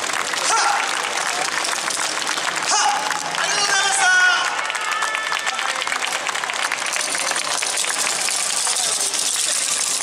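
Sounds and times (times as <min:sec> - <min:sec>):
audience applauding: 0:00.0 - 0:10.0
crowd voices: 0:00.0 - 0:10.0.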